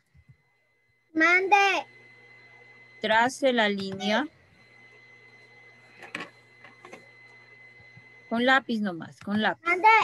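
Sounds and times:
faint electronic whine: 0.0 - 10.0
low hum: 0.0 - 10.0.

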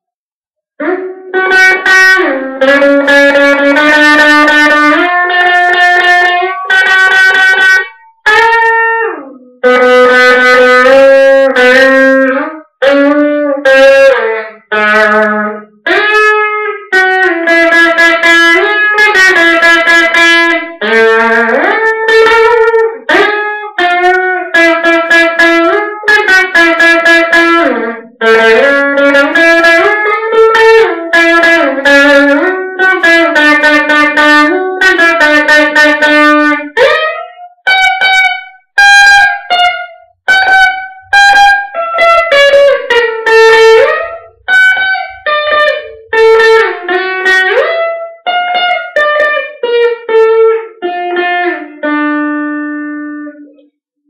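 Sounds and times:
electric guitar solo: 0.8 - 53.8.

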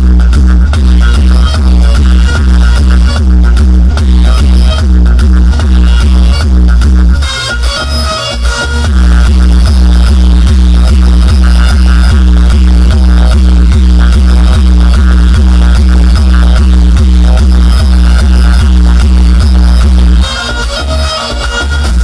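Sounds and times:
loud dance music with heavy bass: 0.0 - 22.0.

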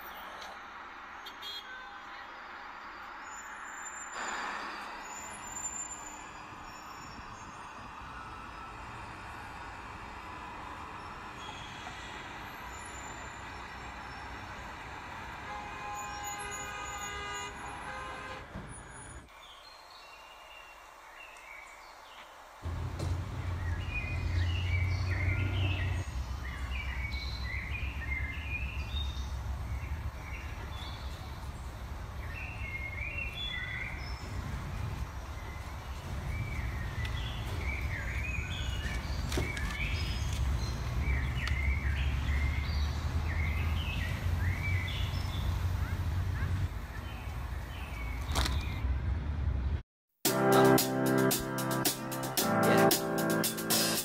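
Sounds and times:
street traffic: 0.0 - 19.5, 20.3 - 54.0
birds chirping: 18.9 - 49.1.

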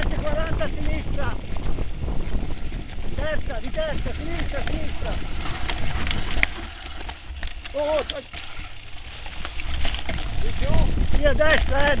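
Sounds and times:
mountain bike rattling on dirt: 0.0 - 12.0
wind rumble on microphone: 0.0 - 12.0.

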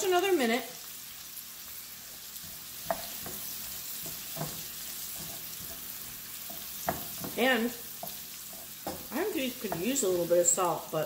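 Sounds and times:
green beans sizzling in skillet: 0.0 - 11.0
tongs clicking against pan: 2.2 - 10.0.

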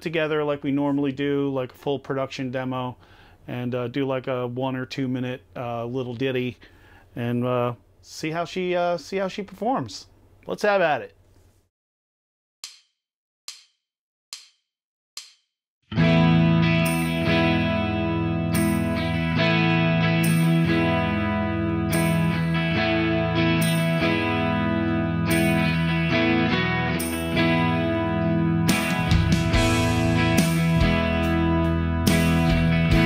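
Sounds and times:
bass guitar: 15.9 - 33.0
electric guitar: 15.9 - 33.0.

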